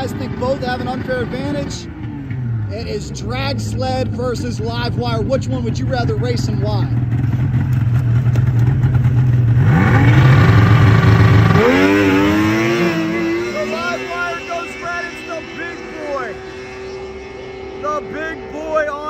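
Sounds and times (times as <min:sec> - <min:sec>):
snowmobile engine revving: 0:00.0 - 0:07.6, 0:08.6 - 0:19.0
faint engine whine: 0:00.0 - 0:19.0.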